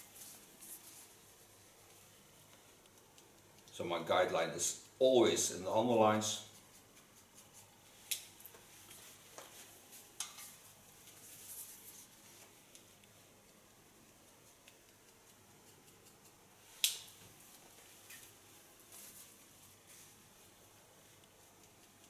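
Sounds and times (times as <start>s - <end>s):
scissors snipping hair: 14.6s - 17.1s.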